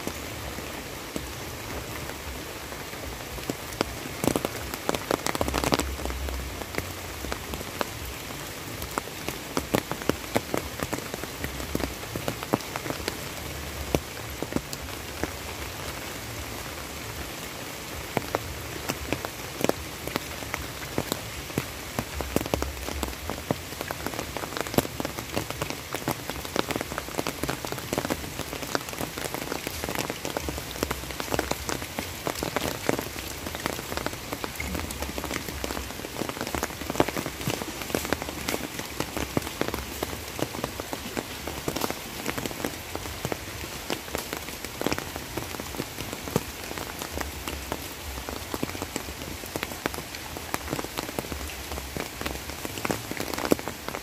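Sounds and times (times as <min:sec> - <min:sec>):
raindrops ticking close by: 0:00.0 - 0:54.0
steady rain falling: 0:00.0 - 0:54.0.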